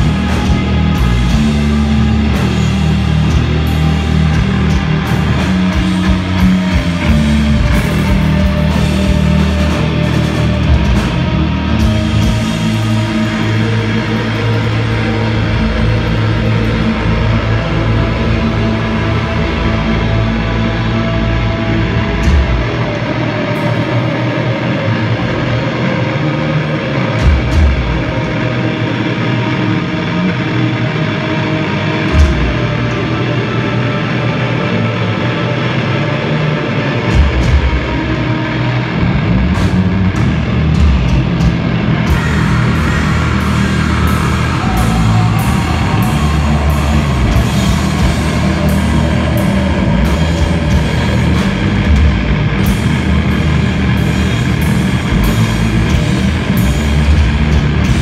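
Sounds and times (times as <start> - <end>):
distorted guitar: 0.0 - 58.0
metal band playing live: 0.0 - 58.0.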